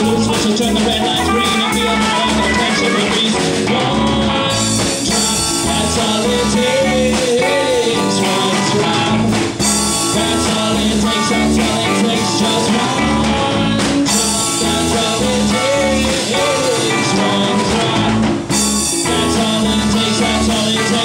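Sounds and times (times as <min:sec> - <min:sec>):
bass: 0:00.0 - 0:21.0
drums: 0:00.0 - 0:21.0
electric guitars: 0:00.0 - 0:21.0.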